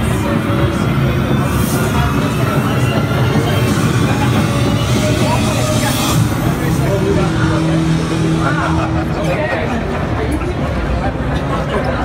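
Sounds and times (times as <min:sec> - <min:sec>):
indistinct crowd voices: 0:00.0 - 0:12.0.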